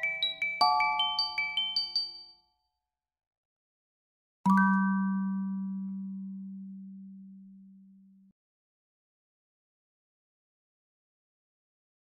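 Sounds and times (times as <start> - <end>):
bright glockenspiel-like chime: 0.0 - 2.8, 4.5 - 6.7.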